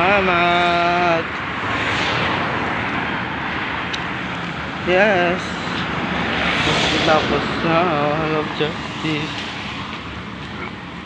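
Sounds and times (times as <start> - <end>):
rushing road noise: 0.0 - 11.0.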